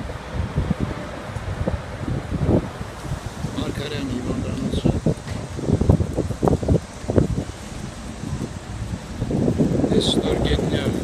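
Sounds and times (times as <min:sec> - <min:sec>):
city street traffic: 0:00.0 - 0:11.0
wind buffeting microphone: 0:00.0 - 0:11.0.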